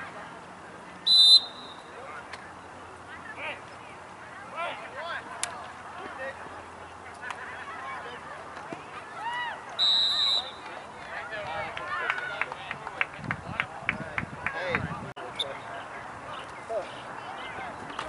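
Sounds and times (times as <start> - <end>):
referee's whistle blast: 1.1 - 1.9, 9.8 - 10.6.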